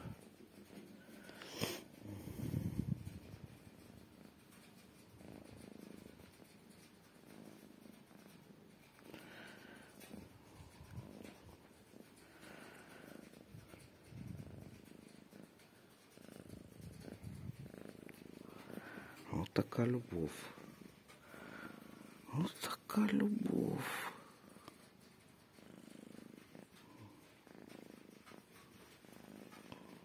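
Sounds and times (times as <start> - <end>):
cat purring: 0.0 - 30.0.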